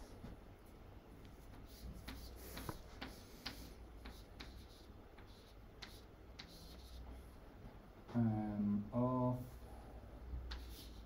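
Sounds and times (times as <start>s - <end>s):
chalk tapping on blackboard: 1.5s - 7.0s, 10.5s - 11.0s.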